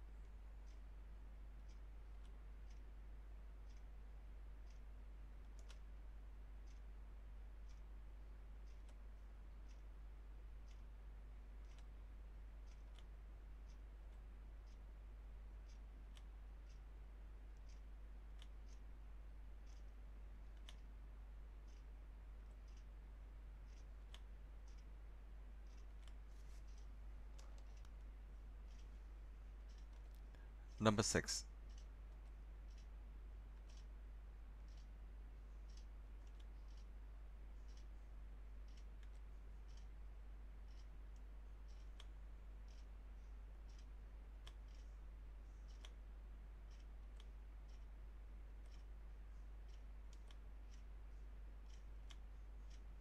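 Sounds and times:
low electrical hum: 0:00.0 - 0:53.0.

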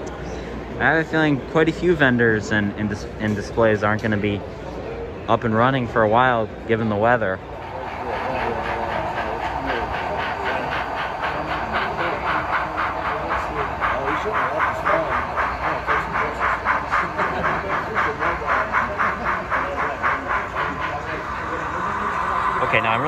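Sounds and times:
steam exhaust chuffs from small speaker: 0:05.8 - 0:23.0.

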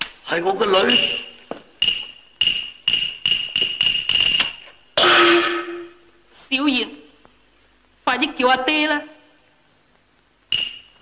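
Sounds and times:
struck metal percussion beats: 0:00.9 - 0:06.0
cymbal crash: 0:05.0 - 0:06.1.

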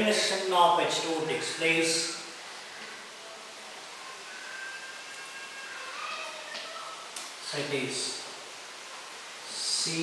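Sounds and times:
steady hiss: 0:00.0 - 0:10.0
thin squeaky tones: 0:04.2 - 0:06.5.

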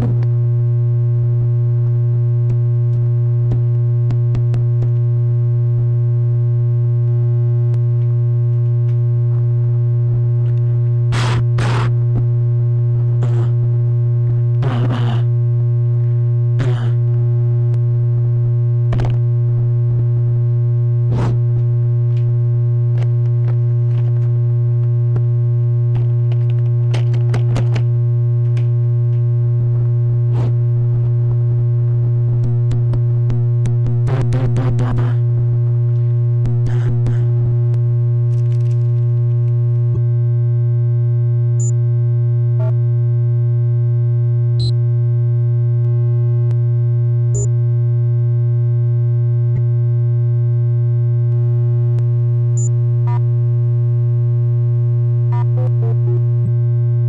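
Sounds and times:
electronic crackles and noise bursts: 0:11.1 - 0:12.3, 0:13.2 - 0:13.6, 0:14.6 - 0:15.3, 0:16.6 - 0:17.0.

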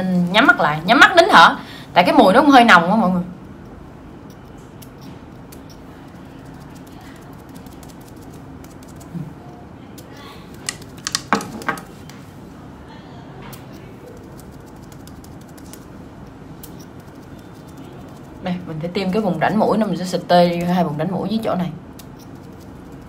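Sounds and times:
spray bottle clicks and taps: 0:10.7 - 0:11.9.

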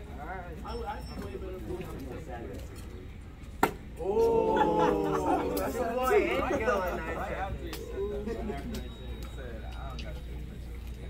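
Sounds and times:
young men calling out: 0:04.0 - 0:08.5.

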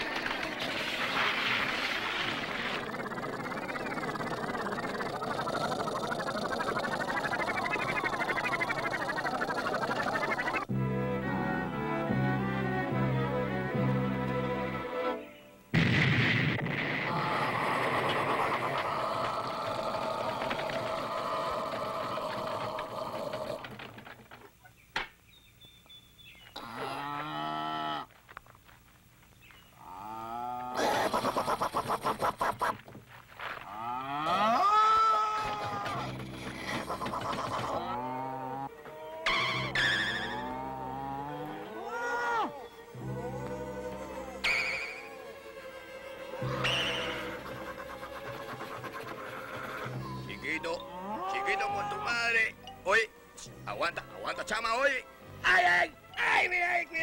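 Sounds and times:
rapid pulses: 0:00.0 - 0:10.7, 0:46.4 - 0:50.2
sliding cartoon sound effects: 0:00.0 - 0:10.7
cartoon music: 0:06.5 - 0:13.8
dense steady noise: 0:15.4 - 0:25.3
tank gun bang: 0:15.8 - 0:17.0.

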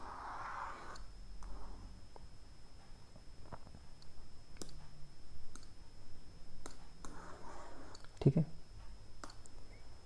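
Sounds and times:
computer mouse clicks: 0:05.5 - 0:05.8.

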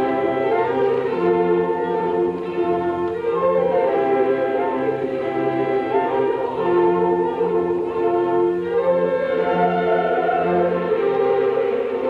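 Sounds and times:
opera chorus singing: 0:00.0 - 0:12.0
orchestra: 0:00.0 - 0:12.0.

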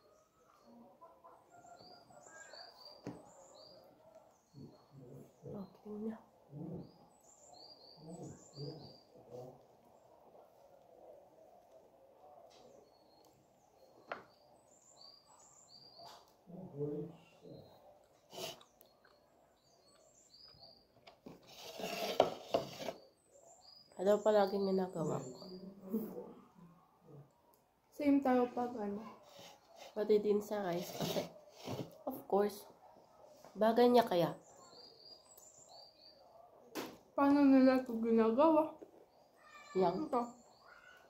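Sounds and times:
small birds chirping: 0:00.0 - 0:41.0
food rustling and scraping: 0:18.2 - 0:19.2, 0:21.2 - 0:23.0, 0:29.1 - 0:32.0.

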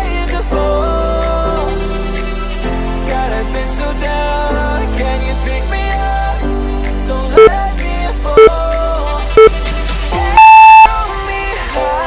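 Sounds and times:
pop background music: 0:00.0 - 0:12.0
long electronic timer beep: 0:10.3 - 0:11.0
short countdown beeps: 0:10.3 - 0:11.0.

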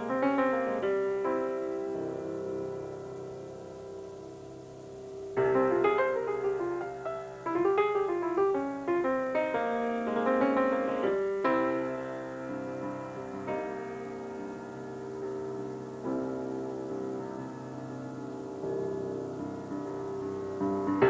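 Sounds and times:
grand piano slow piece: 0:00.0 - 0:21.0.

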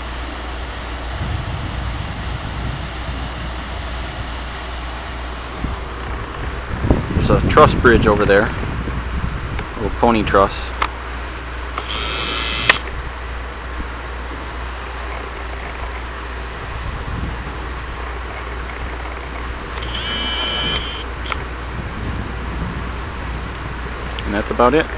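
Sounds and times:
river rushing: 0:00.0 - 0:06.8
powerhouse low hum: 0:00.0 - 0:24.9
short high-pitched calls: 0:11.8 - 0:12.8, 0:19.8 - 0:21.1
sharp click: 0:11.8 - 0:12.9, 0:19.8 - 0:21.4.

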